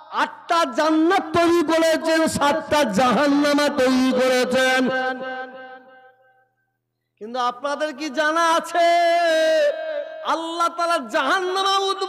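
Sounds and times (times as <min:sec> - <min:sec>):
man chanting a sermon: 0:00.0 - 0:06.1, 0:07.2 - 0:12.0.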